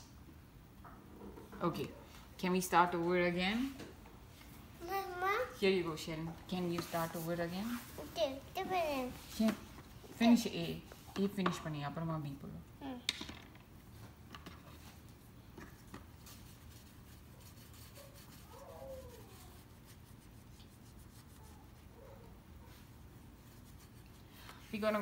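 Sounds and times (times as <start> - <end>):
marker scratching on laminated page: 16.2 - 21.9.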